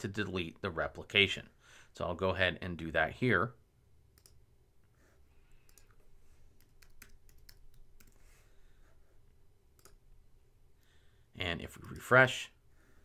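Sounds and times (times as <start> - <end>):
mouse clicks: 4.2 - 4.4, 9.8 - 10.0.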